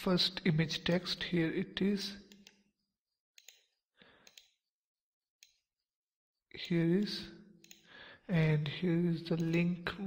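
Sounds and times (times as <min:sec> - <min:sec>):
faint computer mouse clicks: 0:03.4 - 0:04.7.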